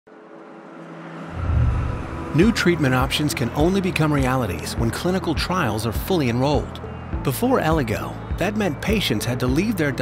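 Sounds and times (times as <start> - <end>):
car engine: 1.3 - 2.6
deep rumble: 1.3 - 2.6.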